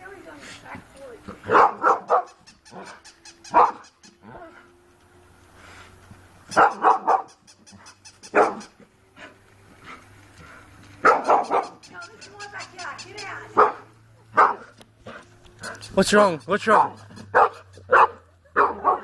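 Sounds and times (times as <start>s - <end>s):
dog barking: 1.4s - 3.9s, 6.5s - 8.7s, 11.0s - 11.8s, 13.5s - 16.0s, 16.7s - 19.0s.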